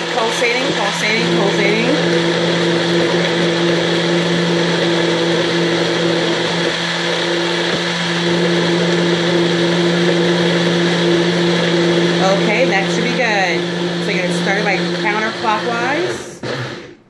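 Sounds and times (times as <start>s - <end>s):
blender motor running: 0.0s - 17.0s.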